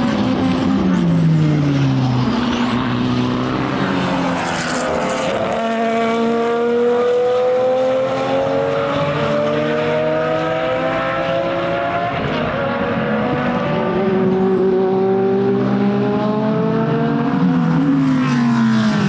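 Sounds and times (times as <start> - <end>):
race car passing: 0.0 - 19.0
race cars accelerating: 0.0 - 19.0.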